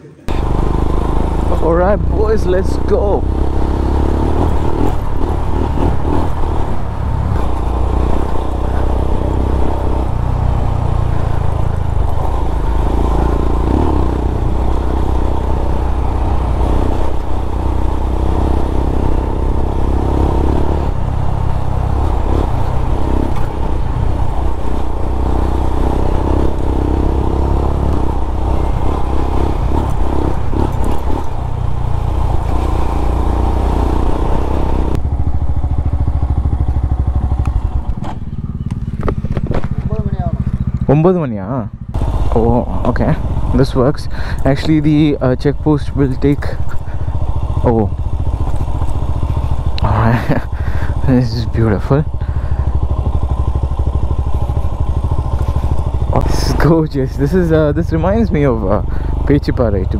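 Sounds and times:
continuous rushing noise: 0.0 - 41.0, 41.6 - 59.9
motorcycle engine running: 0.2 - 59.9.

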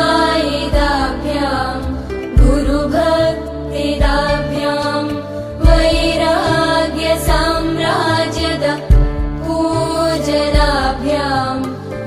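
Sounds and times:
music: 0.0 - 12.0
low thumps: 2.3 - 3.4.

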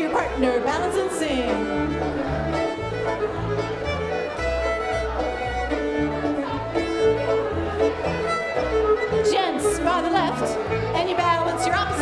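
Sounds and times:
fiddle-led dance band: 0.0 - 12.0
bass line: 0.2 - 12.0.

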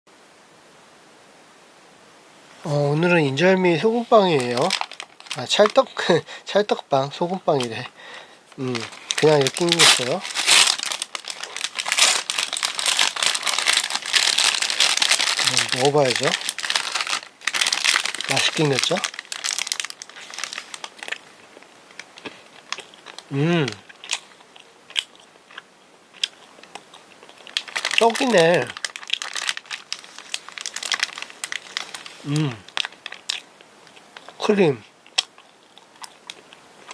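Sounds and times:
bread wrapper crinkling: 3.8 - 6.3, 7.2 - 25.2, 26.2 - 34.4, 35.1 - 36.9
person humming: 8.6 - 8.9, 23.3 - 23.8, 32.2 - 32.7.

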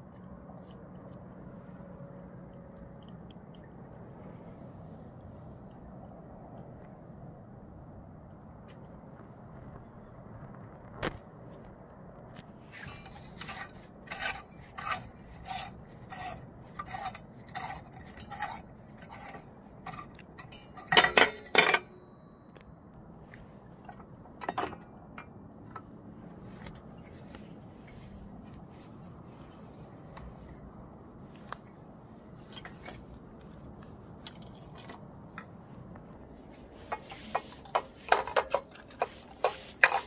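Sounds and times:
small sharp clicks and scrapes: 0.0 - 7.0, 10.4 - 40.0
cloth rubbing on lamp cover: 26.5 - 32.6.

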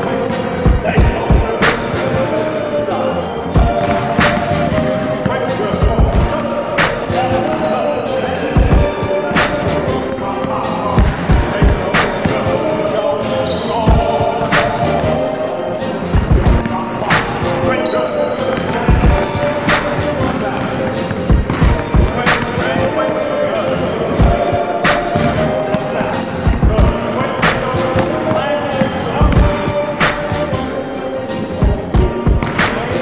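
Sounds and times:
music with vocals: 0.0 - 33.0.

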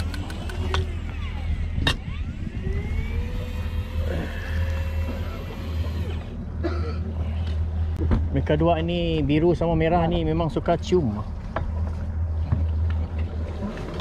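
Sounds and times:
electric fishing reel whining: 0.0 - 6.4.

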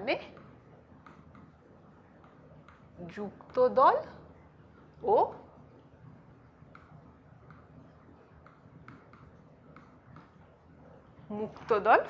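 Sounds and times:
pen writing on a screen: 0.0 - 3.8, 5.6 - 11.8.

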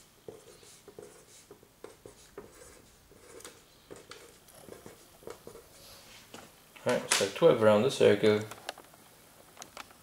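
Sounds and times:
pencil scratching on paper: 0.3 - 5.8.

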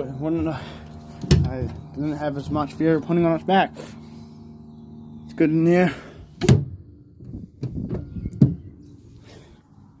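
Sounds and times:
sharp knocks and thumps: 7.6 - 8.7.

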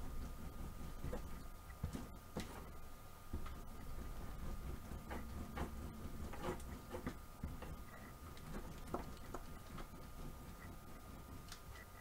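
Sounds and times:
faint high hum: 0.0 - 12.0
rubbing and crinkling on plastic: 0.0 - 12.0.

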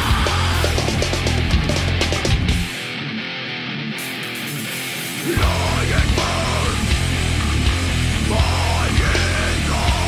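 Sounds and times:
distorted electric guitar: 0.0 - 10.0.

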